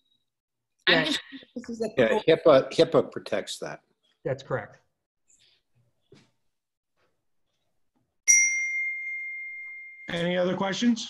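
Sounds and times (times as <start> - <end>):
bright ringing ding: 8.3 - 10.4.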